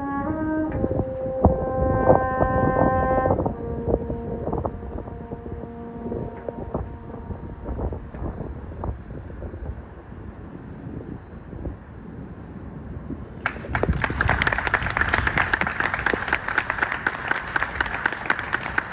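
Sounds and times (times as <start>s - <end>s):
french horn notes: 0.0s - 8.4s
low outdoor rumble: 1.0s - 18.9s.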